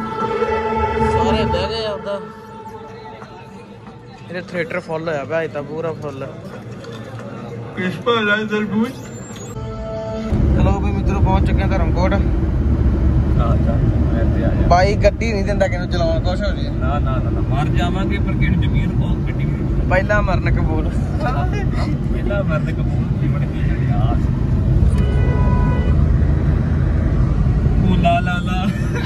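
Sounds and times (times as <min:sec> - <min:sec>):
vehicle horn: 0:00.0 - 0:03.1, 0:09.6 - 0:10.4, 0:24.9 - 0:26.0
car driving rumble inside cabin: 0:10.3 - 0:29.0.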